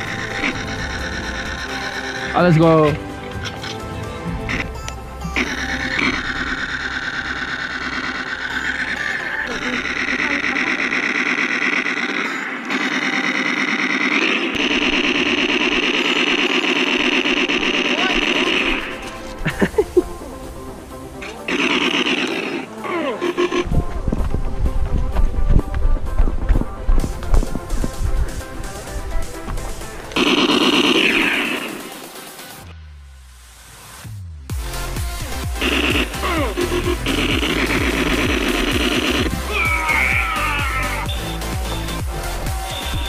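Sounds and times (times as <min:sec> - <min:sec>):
background music with held notes: 0:00.0 - 0:10.0, 0:17.8 - 0:43.0
heavy beat: 0:34.0 - 0:43.0.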